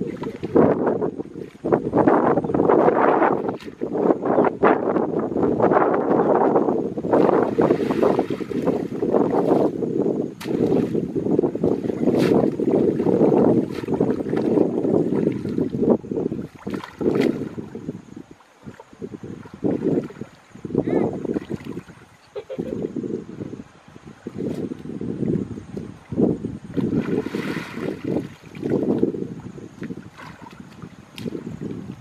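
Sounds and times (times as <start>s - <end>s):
water sloshing and splashing: 0.0s - 1.8s, 7.1s - 22.7s, 24.1s - 32.0s.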